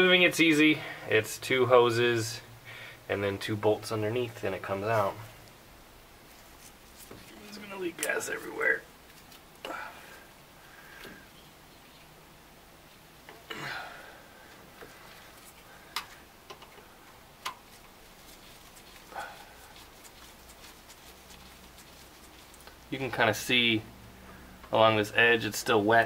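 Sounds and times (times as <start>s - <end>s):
soft scuffs and rustles: 6.2s - 9.6s, 17.6s - 23.5s.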